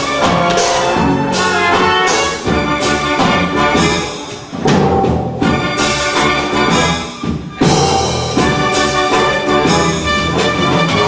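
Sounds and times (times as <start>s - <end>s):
orchestra with brass and timpani: 0.0s - 11.0s.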